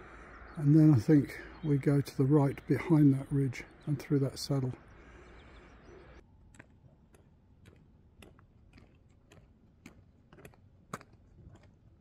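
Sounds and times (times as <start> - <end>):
footstep clicks on paved road: 6.2 - 12.0.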